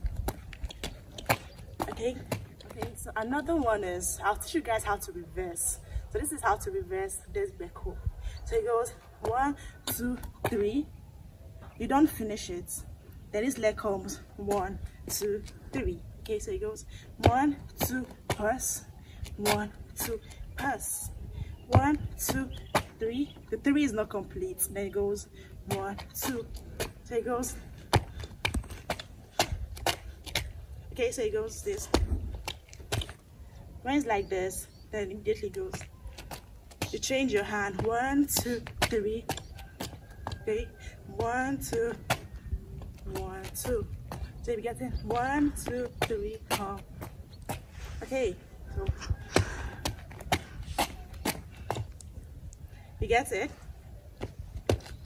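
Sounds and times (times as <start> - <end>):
sneakers tapping on concrete: 0.0 - 5.1, 17.1 - 20.7, 21.6 - 23.6, 25.6 - 33.3, 35.3 - 47.8, 48.8 - 52.6, 54.2 - 55.0.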